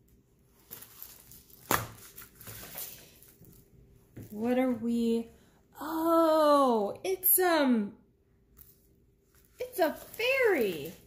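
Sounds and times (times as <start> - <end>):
plastic-covered canvas rustling: 0.4 - 4.4, 9.2 - 11.0.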